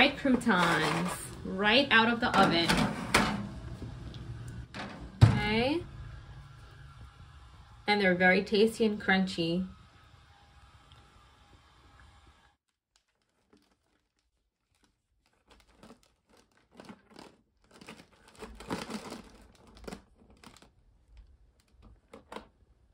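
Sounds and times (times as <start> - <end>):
croutons rattling in plastic container: 15.3 - 20.7.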